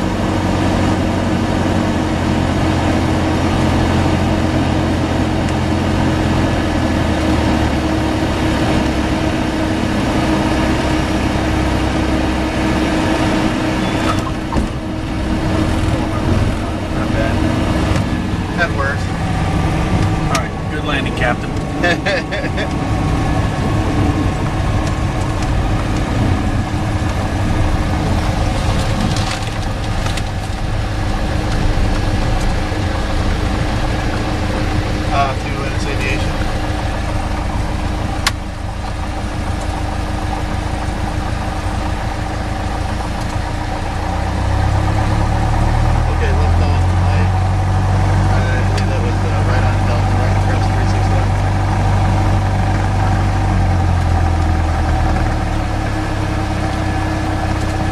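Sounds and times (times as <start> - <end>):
airplane engine drone: 0.0 - 57.9
deep low hum: 0.0 - 57.9.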